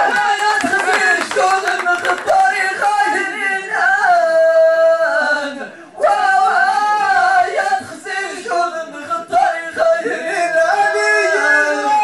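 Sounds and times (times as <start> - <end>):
men chanting into microphones: 0.0 - 12.0.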